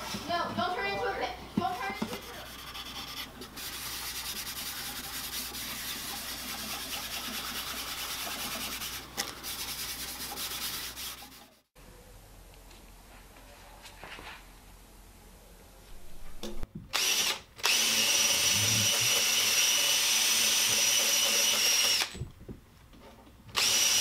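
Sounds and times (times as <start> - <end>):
cloth rubbing on wood: 2.1 - 11.6.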